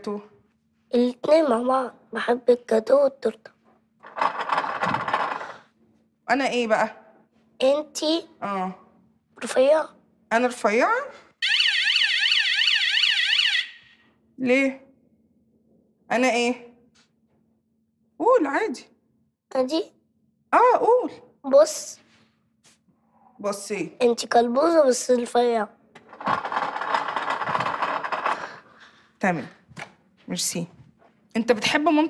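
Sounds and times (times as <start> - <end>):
steady mechanical rattling: 4.0 - 5.5, 26.0 - 28.7
warbling electronic siren: 11.4 - 14.0.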